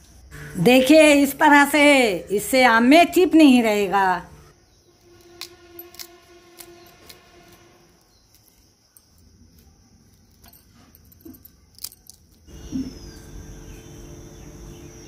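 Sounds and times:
faint ringing tone: 4.2s - 15.0s.

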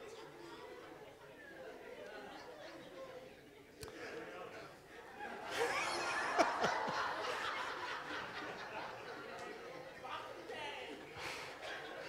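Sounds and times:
congregation laughing: 3.9s - 12.0s.

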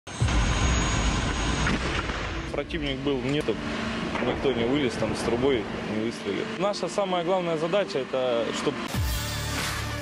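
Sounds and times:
thin high whine: 0.1s - 8.9s
tracked vehicle engine rumble: 0.3s - 8.9s.

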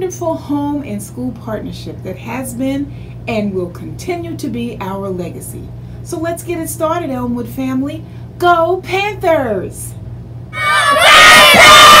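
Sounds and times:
children shouting and cheering: 10.6s - 12.0s.

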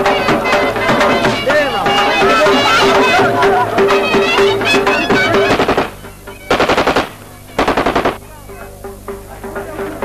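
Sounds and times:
automatic gunfire bursts: 5.4s - 8.2s.

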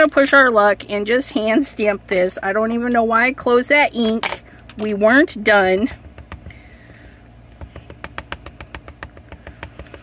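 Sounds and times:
faint steady hum: 0.0s - 10.0s
fingernails tapping on acrylic block: 6.0s - 7.0s, 7.6s - 10.0s.

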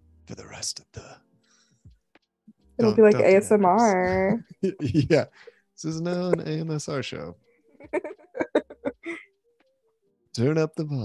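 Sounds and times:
person laughing: 4.0s - 5.3s, 5.9s - 9.2s.

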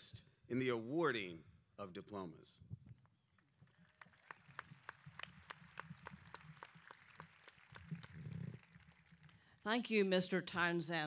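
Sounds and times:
scattered applause: 3.4s - 9.6s.

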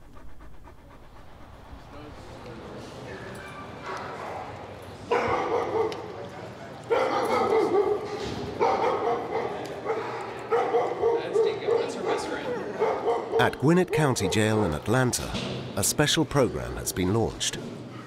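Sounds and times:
dogs barking and yipping: 3.2s - 6.1s, 6.8s - 15.0s.

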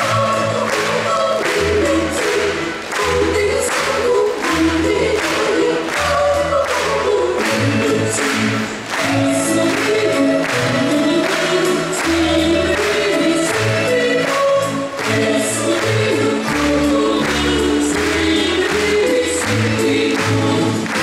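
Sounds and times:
choir singing with accompaniment: 0.0s - 21.0s.

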